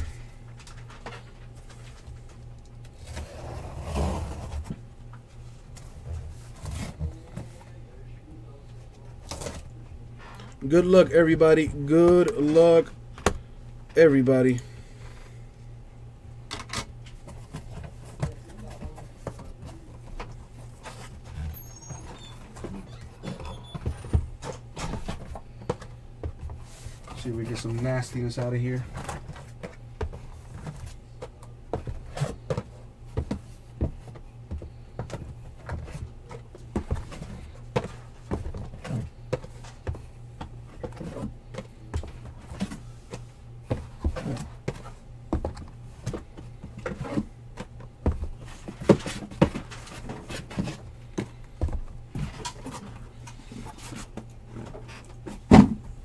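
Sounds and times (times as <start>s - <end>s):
steady low hum: 0.0s - 56.0s
cardboard boxes knocking and rustling: 28.6s - 56.0s.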